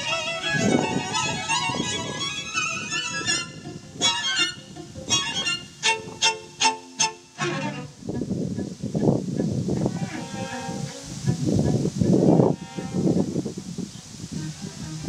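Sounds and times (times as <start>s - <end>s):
string quartet playing: 0.0s - 15.0s.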